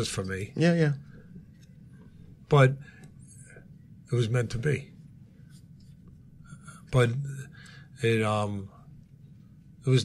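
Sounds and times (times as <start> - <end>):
man speaking: 6.8 - 8.8.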